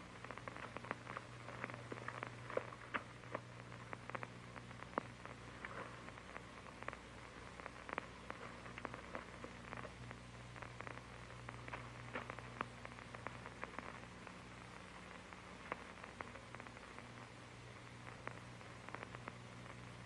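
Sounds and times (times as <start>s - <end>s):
crackles and pops: 0.0s - 20.0s
film soundtrack hiss and hum: 0.0s - 20.0s.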